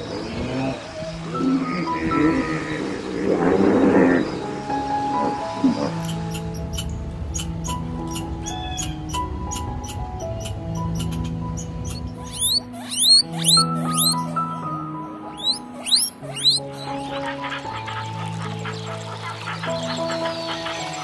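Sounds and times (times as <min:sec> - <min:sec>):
background music with held notes: 0:00.0 - 0:21.0
guinea pig squeaking: 0:11.8 - 0:14.2, 0:15.3 - 0:16.6
squirrel clicking: 0:12.3 - 0:14.2, 0:15.4 - 0:16.6.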